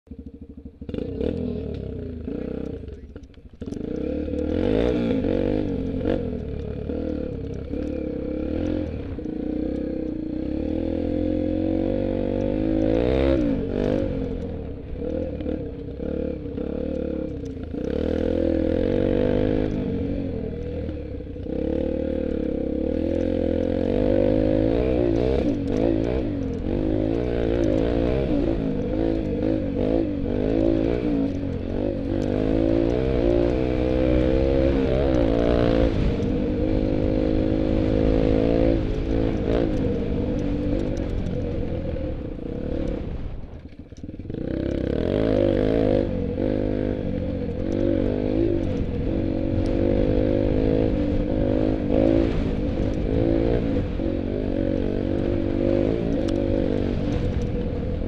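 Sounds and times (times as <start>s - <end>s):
off-road vehicle engine revving: 0.1s - 58.0s.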